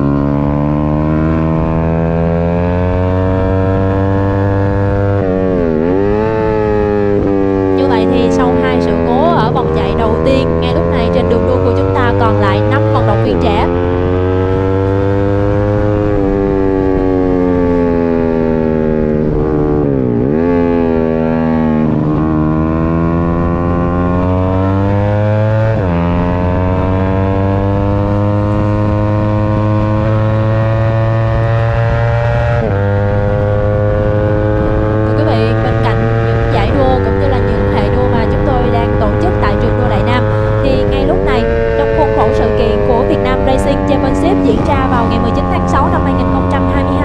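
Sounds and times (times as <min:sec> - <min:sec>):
motorcycle engine revving: 0:00.0 - 0:47.0.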